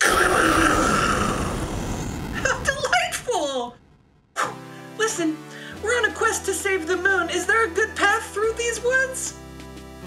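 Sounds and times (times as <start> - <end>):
thunderclap rumbling: 0.1 - 4.4.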